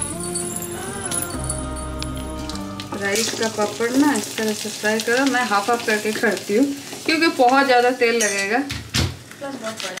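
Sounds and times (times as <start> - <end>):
background music: 0.0 - 4.5
hot oil sizzling: 0.0 - 10.0.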